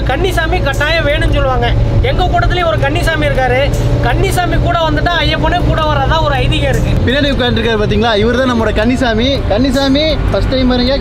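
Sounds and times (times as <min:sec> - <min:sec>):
bus engine rumble: 0:00.0 - 0:11.0
man talking: 0:00.0 - 0:11.0.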